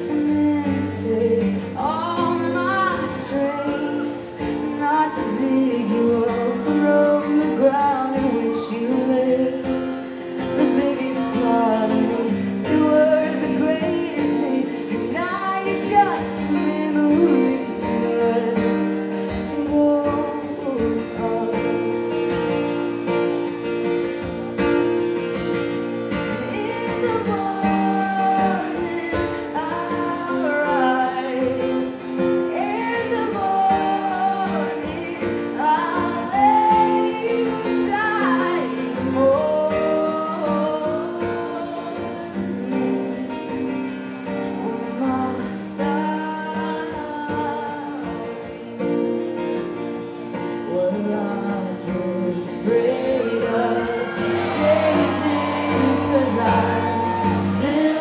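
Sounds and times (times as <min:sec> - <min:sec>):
woman singing into a microphone: 0:00.0 - 0:24.4, 0:25.0 - 0:58.0
acoustic guitar: 0:00.0 - 0:58.0.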